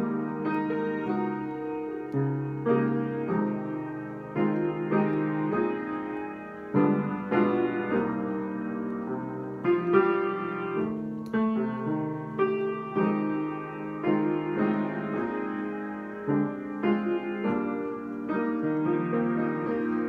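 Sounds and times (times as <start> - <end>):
grand piano chords: 0.0 - 20.0.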